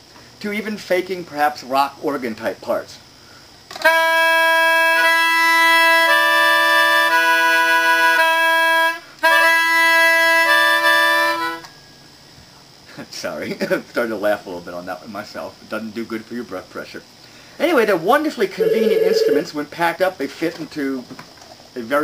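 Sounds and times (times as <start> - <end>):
reed wind instrument chords: 3.8 - 11.6.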